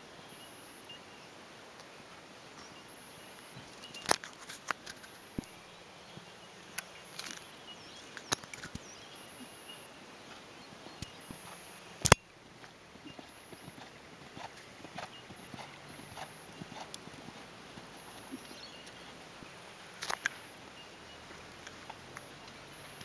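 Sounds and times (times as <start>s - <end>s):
horse hoofbeats on sand: 8.8s - 19.6s.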